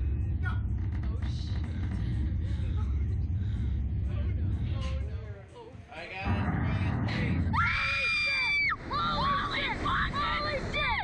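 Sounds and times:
low rush of noise: 0.0s - 11.0s.

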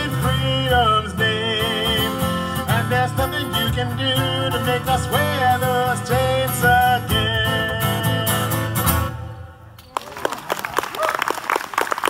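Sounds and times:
audience applauding: 9.8s - 12.0s.

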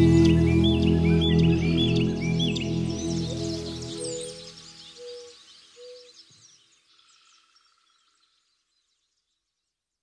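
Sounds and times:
music with held notes: 0.0s - 4.9s
birds chirping: 0.0s - 9.5s.

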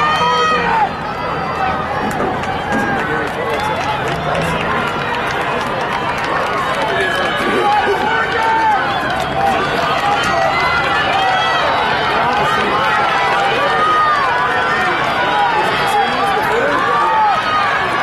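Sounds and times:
crowd yelling and cheering: 0.0s - 18.0s.

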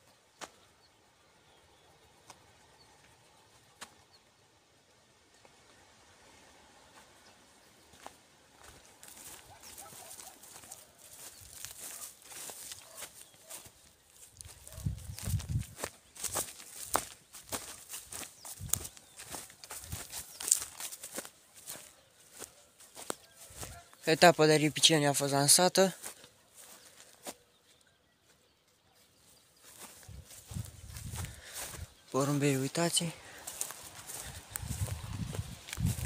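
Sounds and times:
footsteps through dry grass: 0.1s - 4.1s, 5.4s - 36.0s.

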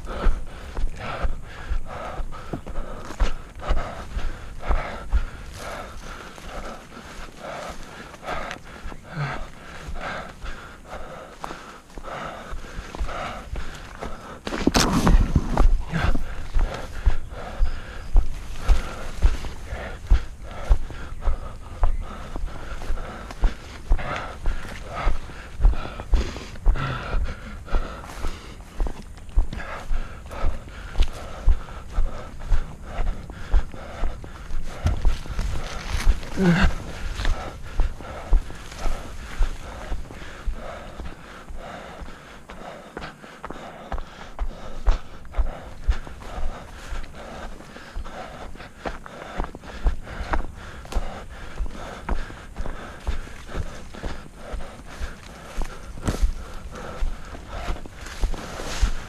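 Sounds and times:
footsteps through undergrowth: 0.1s - 59.0s.

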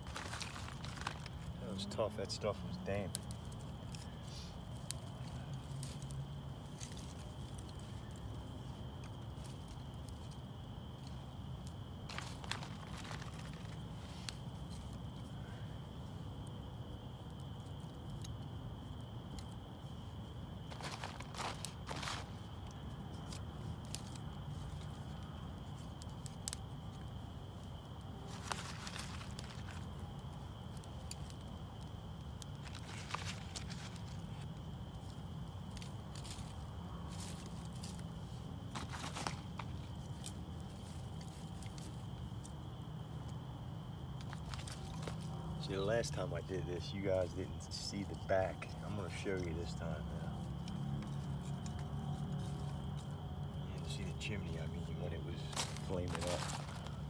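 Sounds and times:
fire crackling: 0.0s - 57.0s.

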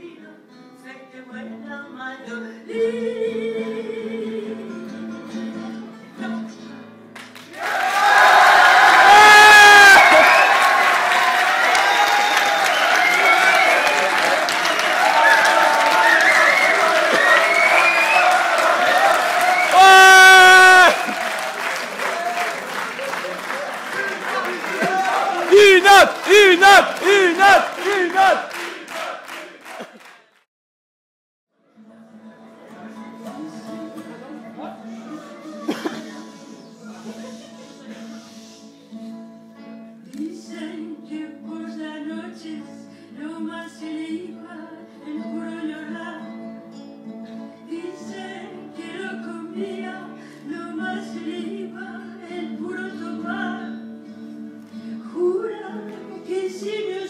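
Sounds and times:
song with voice and acoustic guitars: 0.0s - 7.5s, 31.6s - 57.0s
audience applause: 7.2s - 30.4s
audience cheering and shouting: 7.6s - 30.0s
person's voice: 24.3s - 28.4s.

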